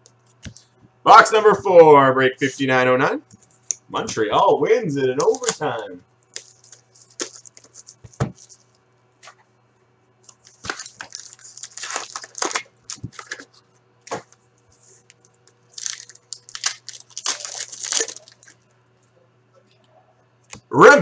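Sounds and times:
packaging crinkling and tearing: 0:05.2 - 0:09.4, 0:10.3 - 0:18.6.

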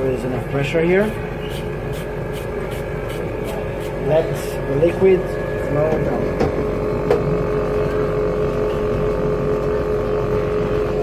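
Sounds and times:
vacuum pump humming: 0:00.0 - 0:11.0.

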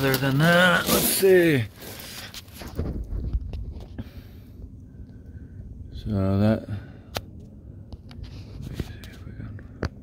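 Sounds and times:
microphone handling noise: 0:02.0 - 0:04.0.

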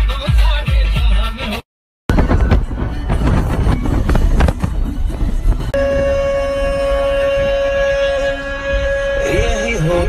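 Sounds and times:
road rumble: 0:01.4 - 0:10.0
wind buffeting: 0:02.1 - 0:10.0
held musical note: 0:05.4 - 0:10.0.

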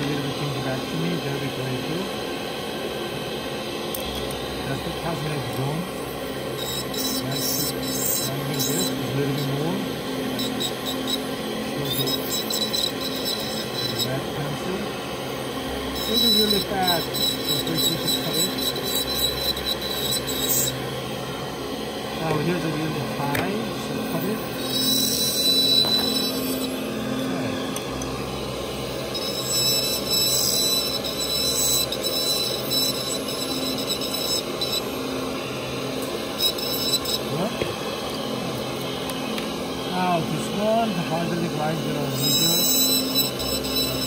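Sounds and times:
high steady motor tone: 0:00.0 - 0:44.0
dental handpiece grinding stone: 0:06.6 - 0:14.7, 0:16.0 - 0:20.8, 0:23.3 - 0:26.8, 0:28.9 - 0:35.0, 0:36.0 - 0:37.6, 0:41.4 - 0:44.0.

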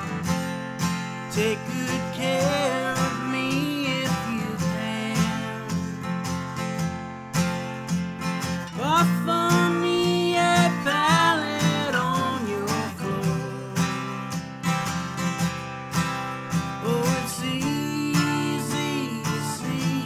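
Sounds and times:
acoustic guitar strumming: 0:00.0 - 0:20.0
person singing: 0:01.4 - 0:06.0, 0:08.8 - 0:14.3, 0:16.8 - 0:20.0.

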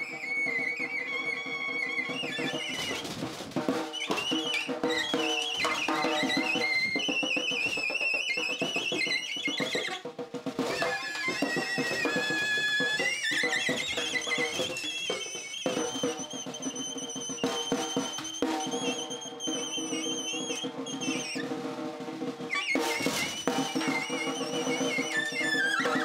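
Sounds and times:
saxophone squealing: 0:00.0 - 0:03.1, 0:03.9 - 0:21.6, 0:22.5 - 0:26.0
snare drum played by hand: 0:00.0 - 0:26.0.

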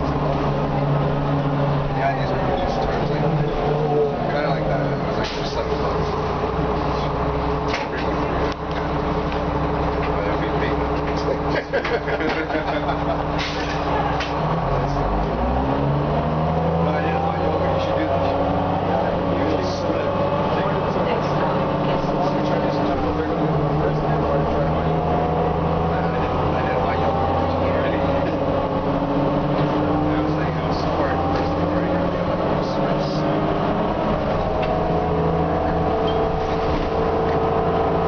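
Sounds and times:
bus diesel engine: 0:00.0 - 0:38.0
passengers chatting: 0:00.0 - 0:38.0.

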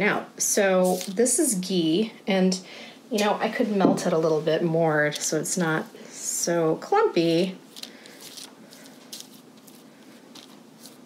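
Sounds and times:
pastry brush swishes: 0:00.8 - 0:01.2, 0:07.7 - 0:11.0.

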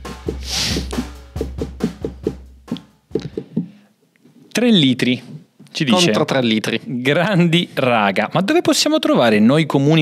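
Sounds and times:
electronic drum beat with bass: 0:00.0 - 0:03.4.

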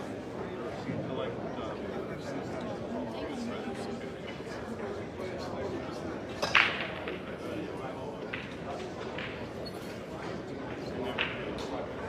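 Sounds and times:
murmur of crowd: 0:00.0 - 0:12.0
billiard balls clacking: 0:06.3 - 0:07.3, 0:08.2 - 0:09.6.

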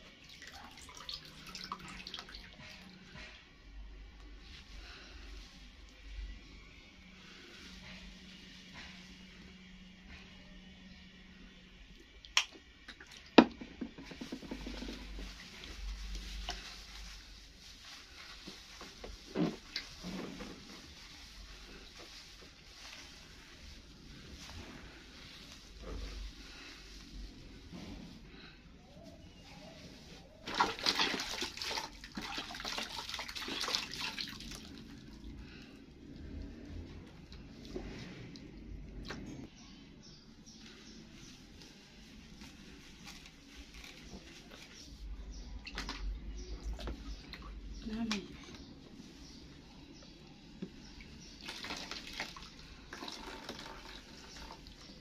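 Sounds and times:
squelching hair scrubbing: 0:29.3 - 0:35.4.

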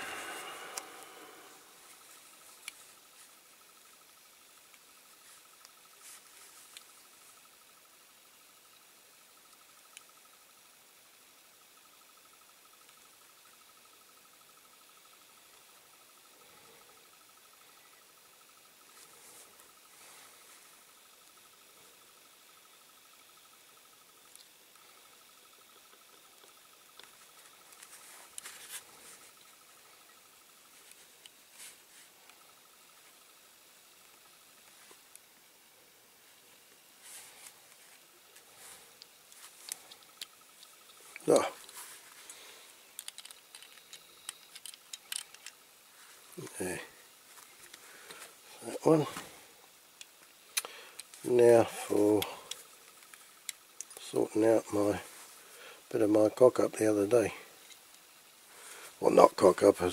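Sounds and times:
faint high-pitched tone: 0:00.0 - 0:02.6
small plastic clicks: 0:42.8 - 0:45.6.

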